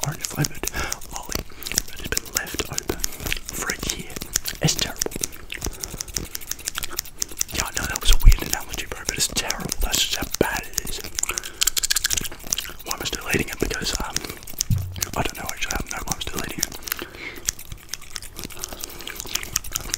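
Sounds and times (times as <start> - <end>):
soft whispering: 0.0 - 5.2, 7.5 - 11.2, 12.7 - 17.2
comb and scissors clicking: 0.0 - 19.9
mouth sounds: 0.0 - 19.9
thump on microphone: 14.7 - 15.2.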